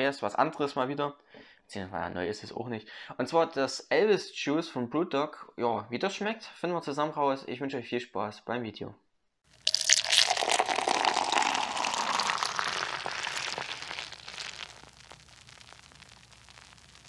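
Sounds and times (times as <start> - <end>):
beer pouring and fizzing: 9.5 - 17.0.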